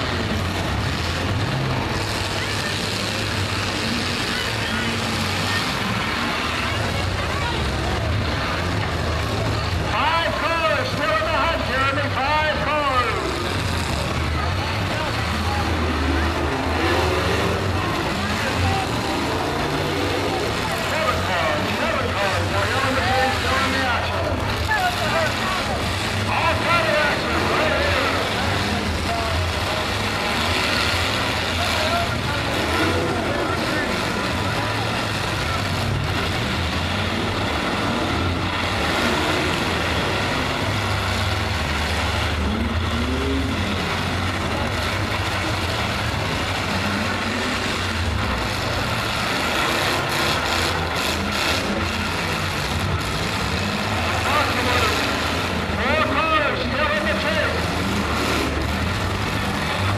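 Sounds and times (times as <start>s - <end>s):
car engines rumbling: 0.0s - 59.9s
crowd chatter: 0.0s - 59.9s.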